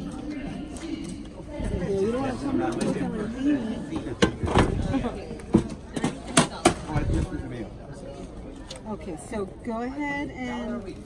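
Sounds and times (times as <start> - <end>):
low murmur of voices: 0.0 - 11.0.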